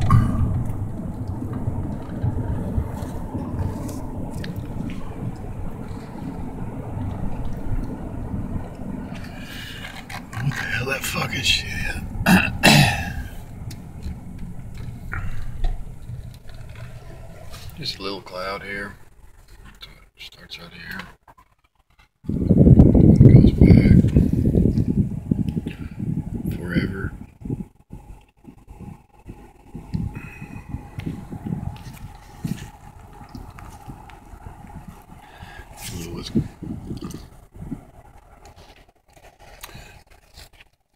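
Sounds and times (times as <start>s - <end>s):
wind buffeting microphone: 0.0s - 19.6s, 22.2s - 40.2s
road noise inside a car: 0.0s - 40.9s
person coughing: 12.2s - 13.3s.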